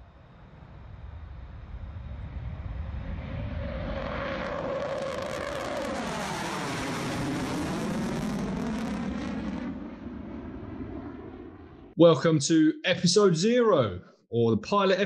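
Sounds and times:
jet aircraft roar: 0.0 - 12.0
whining tone dropping in pitch: 2.0 - 11.9.

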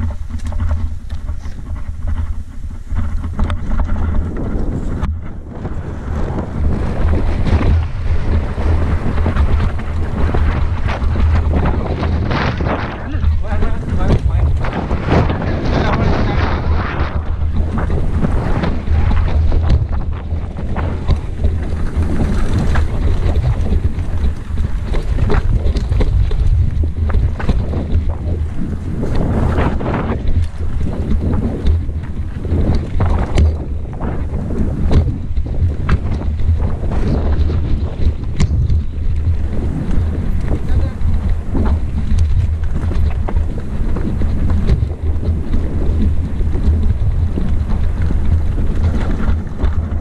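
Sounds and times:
bike rattles and knocks: 0.0 - 50.0
wind buffeting microphone: 0.0 - 50.0.

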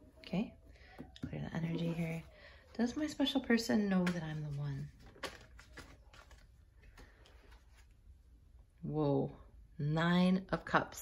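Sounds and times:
cards clicking and tapping: 3.8 - 7.6.

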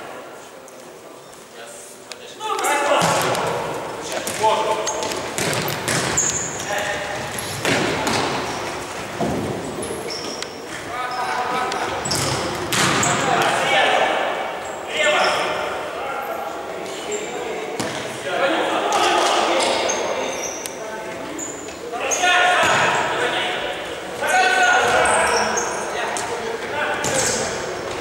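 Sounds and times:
shoes squeaking on floor: 4.2 - 13.4, 19.0 - 23.3, 24.2 - 28.0
ball thudding on hard court: 5.0 - 6.2, 7.6 - 8.4, 12.1 - 13.1
players shouting: 21.9 - 28.0.

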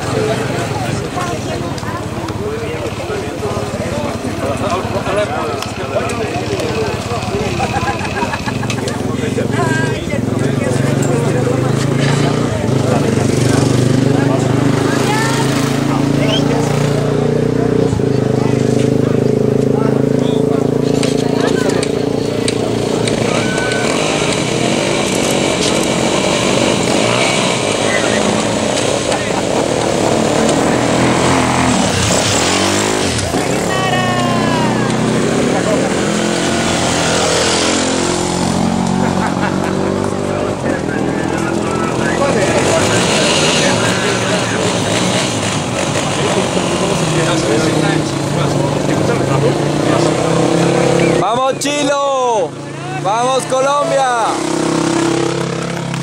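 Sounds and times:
crowd chatter: 0.0 - 56.0
motorcycle engines revving: 0.0 - 56.0.

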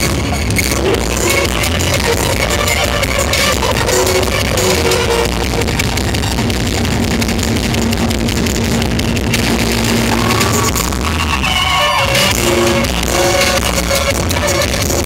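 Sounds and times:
amplified live band: 0.0 - 15.0.

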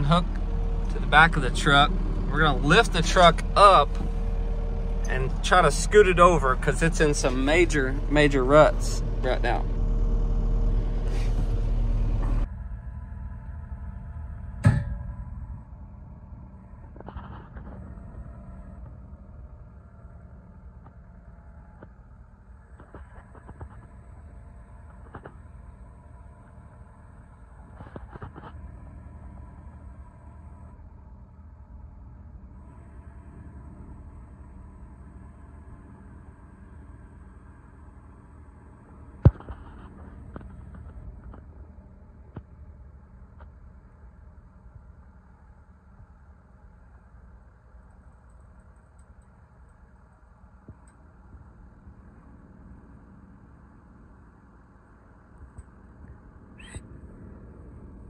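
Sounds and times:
diesel engine running: 0.0 - 20.3, 22.6 - 43.6.

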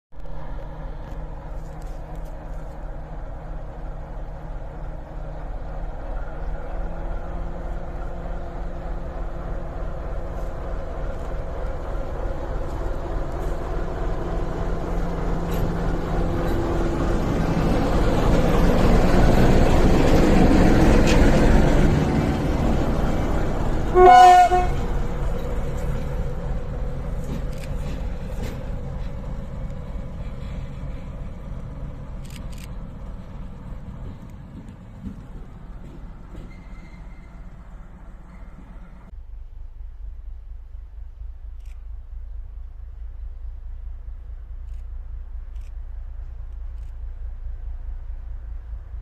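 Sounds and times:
wheels rumbling on rails: 0.1 - 49.0
diesel locomotive engine running: 0.2 - 49.0.

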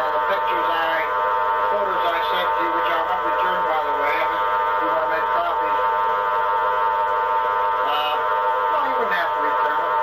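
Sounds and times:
buzzing electronic drone: 0.0 - 10.0.

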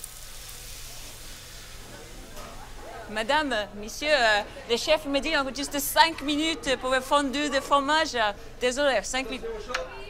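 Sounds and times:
food sizzling in a pan: 0.0 - 3.4.

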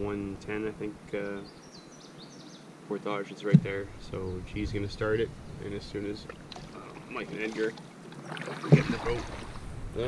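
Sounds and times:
small bird chirping: 1.2 - 2.7
man speaking: 2.9 - 7.8, 8.7 - 9.4.

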